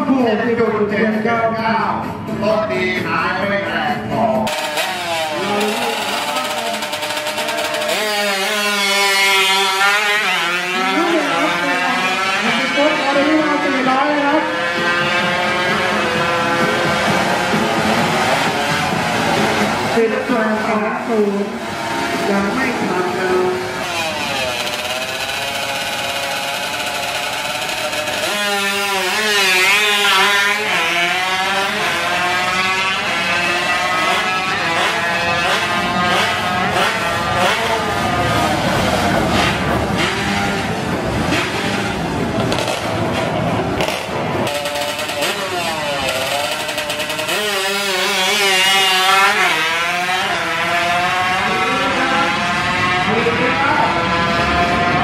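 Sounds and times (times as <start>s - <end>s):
scooter engines revving high: 0.0s - 55.0s.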